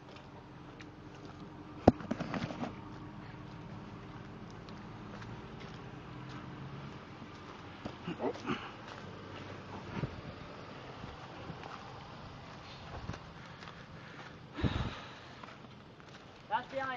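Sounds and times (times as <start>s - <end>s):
car engine idling: 0.0s - 16.6s.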